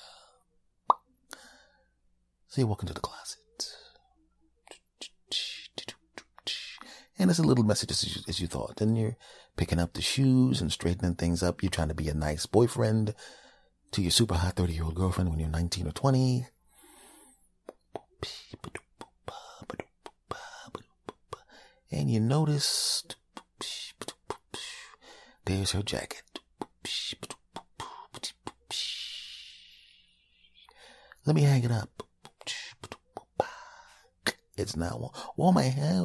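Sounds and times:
soft breath: 0.0 - 0.5, 1.3 - 2.0, 13.2 - 13.8, 16.6 - 17.5, 24.6 - 25.4, 28.8 - 31.2, 33.4 - 34.2
mouth clicks: 4.6 - 6.9, 17.6 - 21.6, 26.2 - 29.5, 31.9 - 33.5
man speaking: 7.2 - 13.0
breathy mouth hisses: 28.8 - 30.8.

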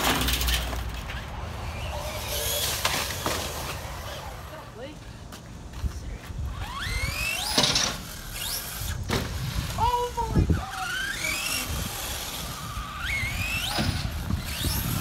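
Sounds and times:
toy truck motor whining: 6.5 - 15.0.

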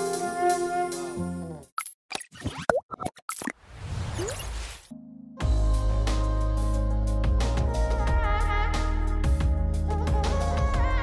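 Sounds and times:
cartoon plops and boings: 1.8 - 3.6.

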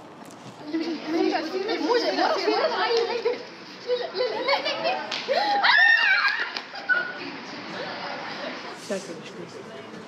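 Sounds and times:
young women talking: 0.6 - 5.2.

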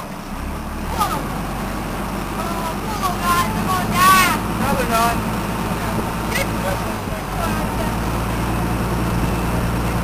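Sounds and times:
boat engine rumbling: 0.0 - 10.0
children's excited voices: 0.9 - 1.3, 2.4 - 4.5.

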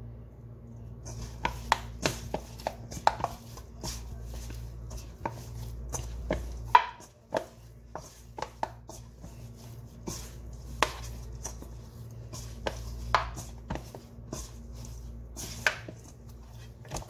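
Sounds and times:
steady low hum: 0.0 - 17.0
dough slapping in metal bowl: 1.0 - 17.0.

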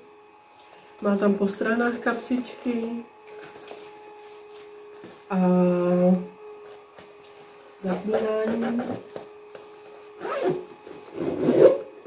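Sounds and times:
zipper rasping: 10.2 - 11.9.

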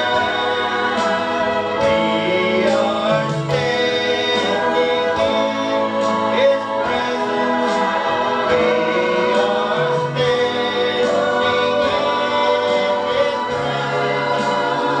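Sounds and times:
man and woman singing duet: 0.0 - 15.0.

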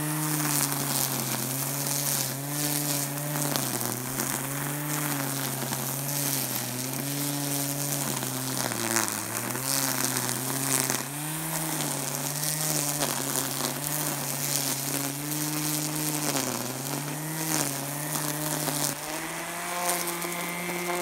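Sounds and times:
electric string trimmer running: 0.0 - 21.0
trimmer line ticking on grass: 0.0 - 21.0.

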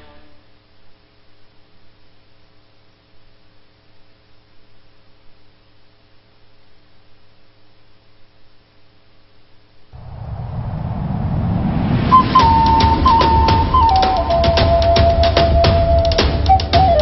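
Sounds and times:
rumbling music intro: 10.2 - 17.0.

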